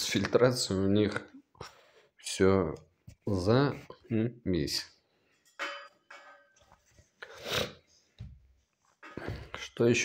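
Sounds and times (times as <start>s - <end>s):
glass clinking: 5.4s - 6.7s.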